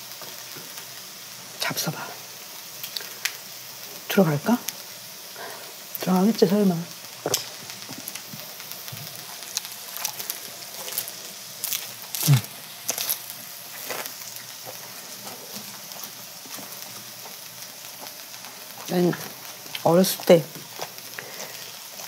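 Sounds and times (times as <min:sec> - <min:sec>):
faint sizzle from a griddle: 0:00.0 - 0:22.0
crunch of leaves being chewed: 0:09.5 - 0:15.7
person humming: 0:12.2 - 0:12.6.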